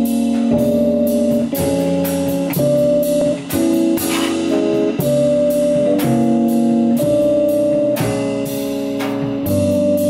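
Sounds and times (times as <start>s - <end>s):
electric piano chords: 0.0s - 10.0s
upright bass: 0.0s - 10.0s.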